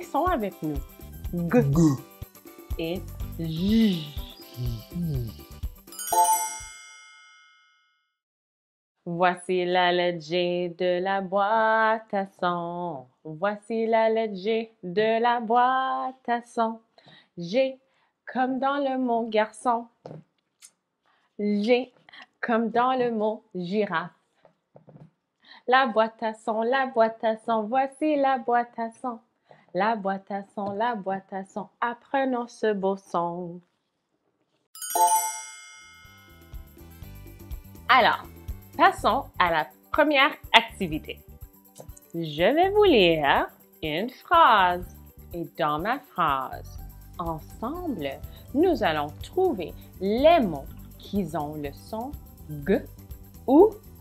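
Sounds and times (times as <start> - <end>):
soft background music: 0.0 - 6.6, 36.1 - 54.0
bright bell-like chime: 5.9 - 8.0, 34.8 - 36.9.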